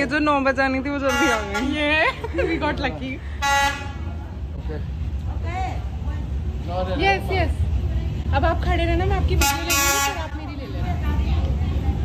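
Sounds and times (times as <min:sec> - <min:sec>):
train rumble: 0:00.0 - 0:12.0
train horn: 0:09.4 - 0:10.3.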